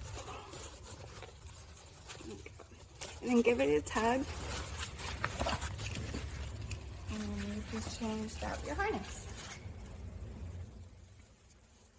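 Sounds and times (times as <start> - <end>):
low steady hum: 0.0 - 11.9
strap webbing rustling: 0.0 - 11.9.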